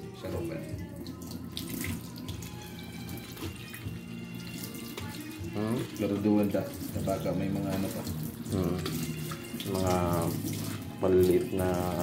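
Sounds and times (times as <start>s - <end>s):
faucet water splashing into sink: 0.0s - 12.0s
hands rinsing leaves: 0.0s - 12.0s.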